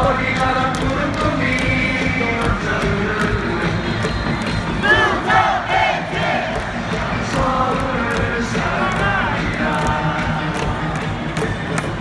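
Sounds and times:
amplified music: 0.0 - 12.0
stadium crowd singing: 0.0 - 12.0.

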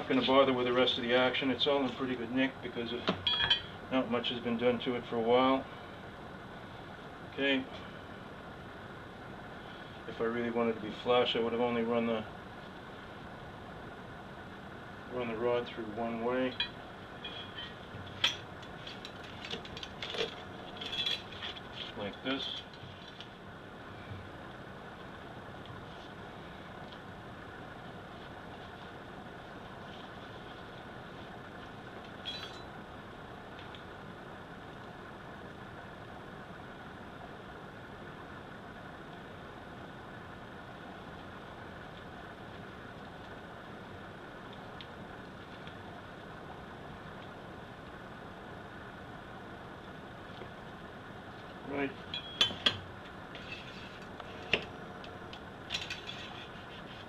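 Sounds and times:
faint room hum: 0.0 - 57.0
metal clinks and knocks: 3.2 - 3.7, 16.6 - 21.6, 32.2 - 32.7, 52.1 - 53.6, 55.7 - 56.5.

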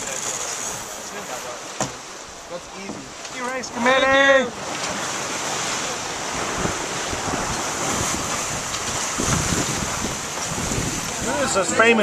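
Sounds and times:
water washing along boat hull: 0.0 - 12.0
wind on microphone: 4.8 - 12.0.

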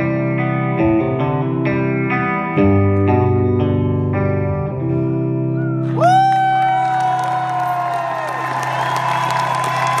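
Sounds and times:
crowd applauding and cheering: 5.8 - 10.0.

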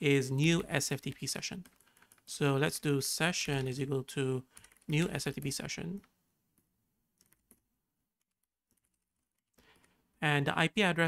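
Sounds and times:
soft keyboard keystrokes: 4.6 - 7.6.

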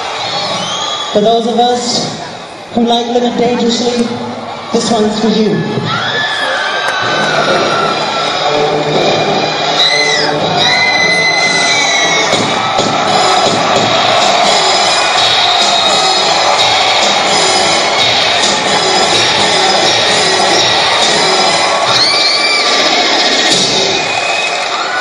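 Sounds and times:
audience cheering and shouting: 0.0 - 25.0
recorded music playback: 0.0 - 25.0
high drawn-out shouts: 5.4 - 8.5, 9.4 - 25.0.

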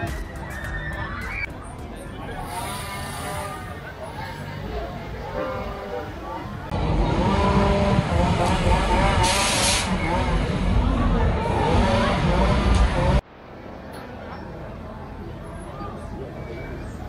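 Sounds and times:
people's voices and shouts: 0.0 - 13.2
crowd noise: 0.0 - 17.0
fairground ride rumble: 0.0 - 17.0
air hiss burst: 2.4 - 3.6, 9.2 - 9.9.

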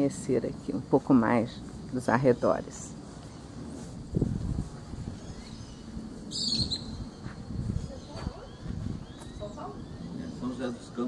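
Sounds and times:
birds chirping: 1.1 - 11.0.

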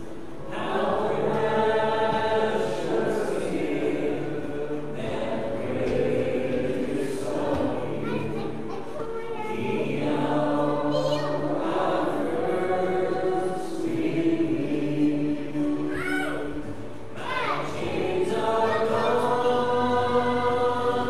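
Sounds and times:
group singing a hymn: 0.0 - 21.0.

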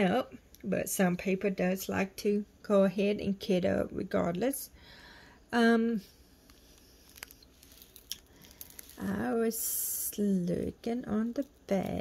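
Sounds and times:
plastic bags crinkling: 6.4 - 9.4.

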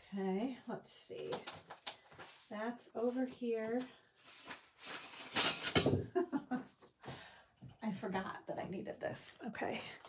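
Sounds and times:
paper rustling: 1.2 - 6.1.

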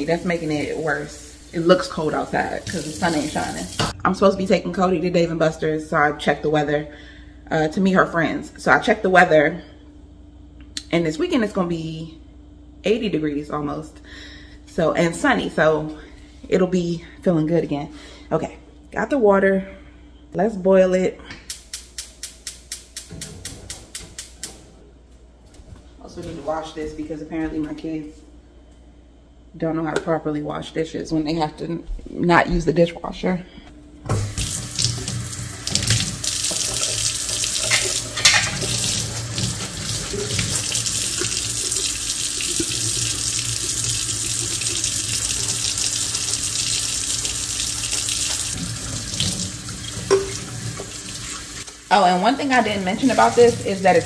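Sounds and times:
faucet running into steel sink: 0.0 - 4.0, 34.1 - 51.9.

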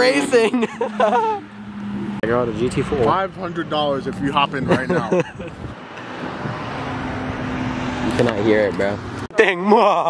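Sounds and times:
car driving by: 0.0 - 9.2.

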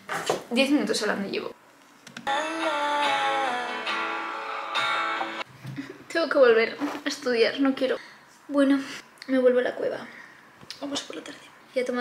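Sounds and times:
guitar music: 2.2 - 5.5.

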